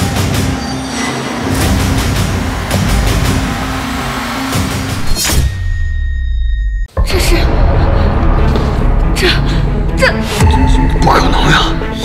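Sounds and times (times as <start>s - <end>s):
dramatic orchestral score: 0.0s - 5.1s, 7.0s - 12.0s.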